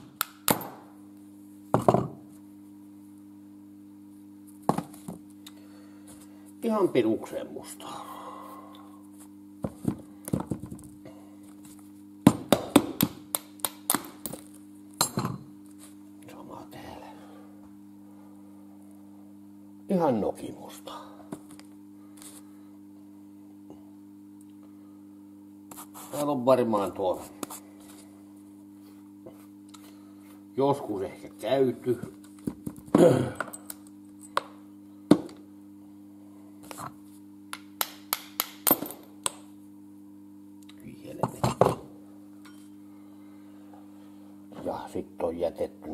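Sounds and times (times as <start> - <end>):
steady low hum: 0.0 - 45.9.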